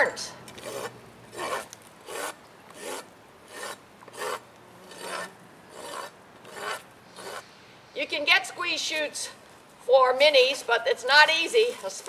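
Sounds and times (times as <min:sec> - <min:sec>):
rasp filing a hoof: 0:00.6 - 0:07.5.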